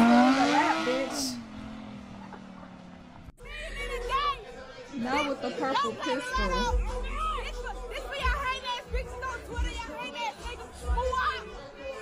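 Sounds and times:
woman speaking: 3.6s - 6.8s
music with deep bass beat: 6.3s - 11.7s.

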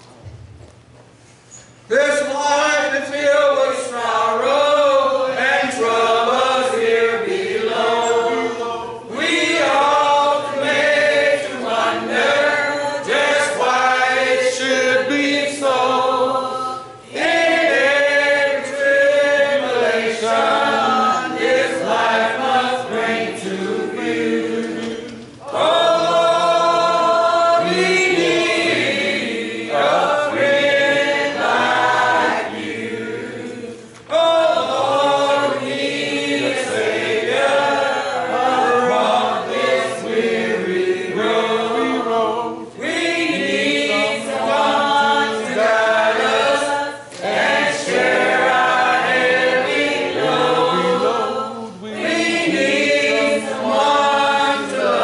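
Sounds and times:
congregation singing a hymn: 1.9s - 55.0s.

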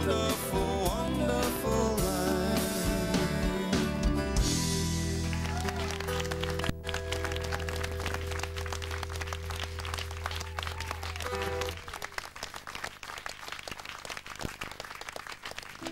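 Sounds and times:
live band music: 0.0s - 12.0s
audience applause: 4.8s - 15.9s.

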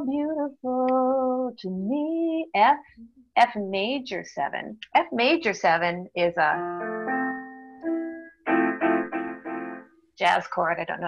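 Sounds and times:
electronic keyboard chord: 6.6s - 9.9s.

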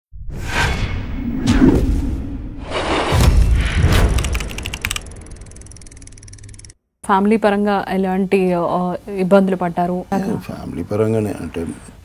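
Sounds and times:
whooshes: 0.1s - 5.3s.

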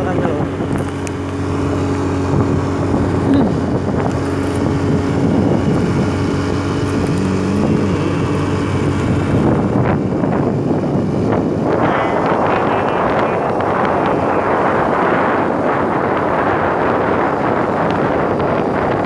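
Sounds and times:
motorcycle engine running: 0.0s - 19.0s
wind rushing over microphone: 0.0s - 19.0s.

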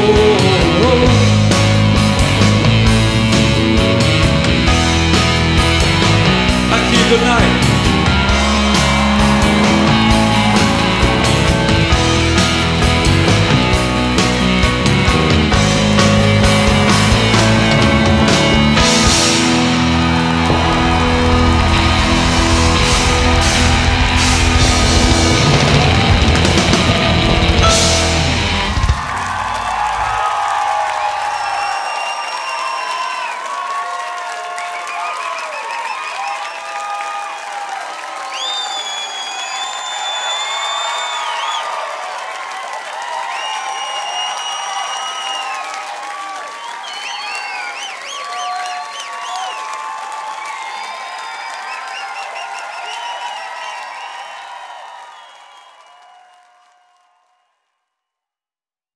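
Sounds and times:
rock band final chord: 0.0s - 30.4s
audience applauding: 0.0s - 57.6s
audience cheering and whistling: 4.7s - 57.5s.

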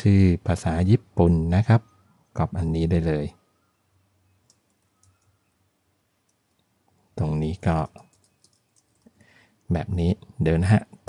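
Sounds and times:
computer keyboard keystrokes: 4.4s - 5.4s, 7.9s - 9.2s.

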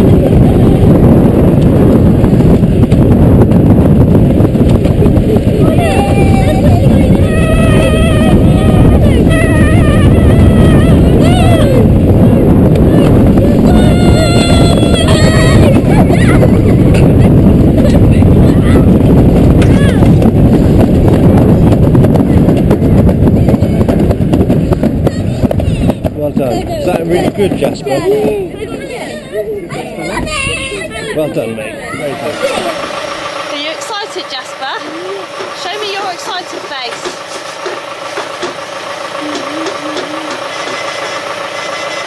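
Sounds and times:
sled rumbling on metal track: 0.0s - 42.0s
tractor engine idling: 31.7s - 42.0s
clicks and knocks on track: 36.5s - 38.7s.

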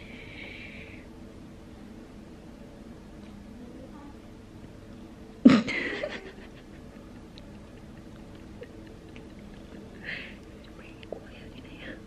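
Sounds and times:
steady low hum: 0.0s - 12.0s
faint breathy giggling: 5.6s - 10.6s.

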